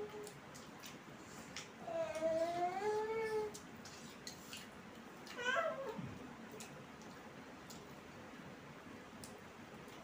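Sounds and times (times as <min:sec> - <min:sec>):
faint eating clicks: 0:06.4 - 0:08.2, 0:09.1 - 0:10.0.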